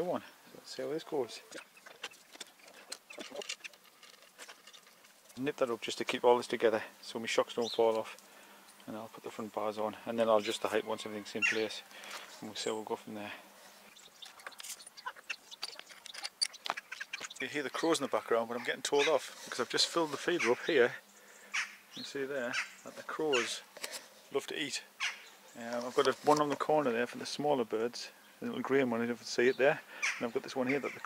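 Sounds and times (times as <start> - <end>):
faint bird calls: 0.1 - 5.1, 10.3 - 12.4, 13.7 - 23.7, 24.9 - 25.9, 29.9 - 31.0
crows cawing: 21.3 - 21.9, 25.0 - 25.4, 29.9 - 31.0.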